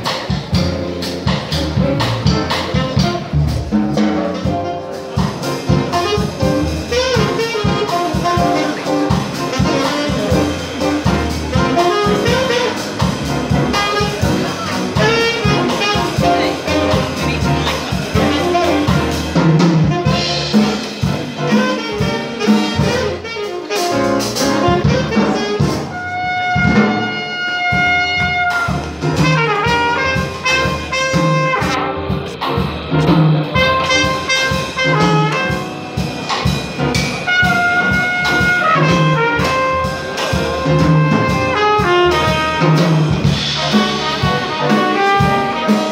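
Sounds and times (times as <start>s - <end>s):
upright double bass: 0.0s - 45.9s
trumpet: 2.2s - 45.9s.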